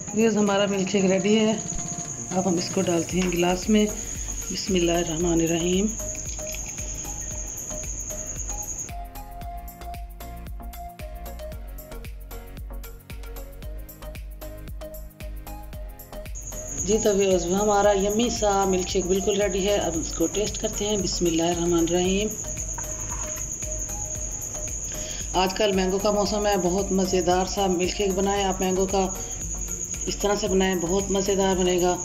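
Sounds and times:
cricket trilling: 0.0 - 32.0.

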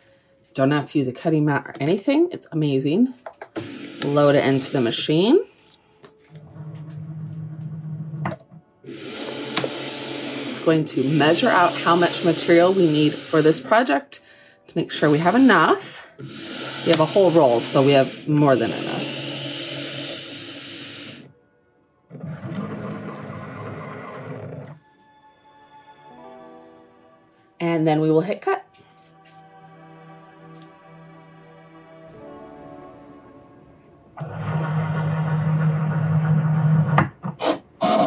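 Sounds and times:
motors whirring: 8.9 - 13.6, 16.2 - 21.3.

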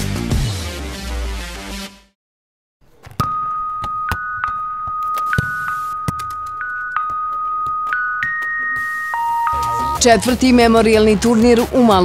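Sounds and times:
higher electronic tone: 3.2 - 10.0
steady high electronic tone: 3.2 - 10.0.

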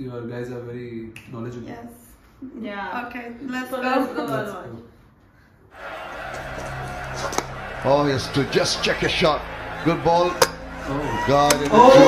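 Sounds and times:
music: 5.8 - 12.0.

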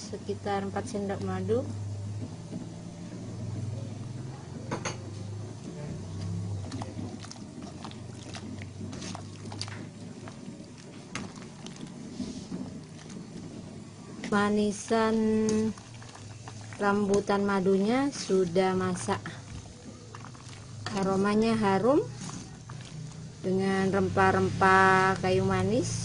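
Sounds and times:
steady low hum: 0.0 - 26.0
syrup bubbling in a pot: 0.1 - 26.0.

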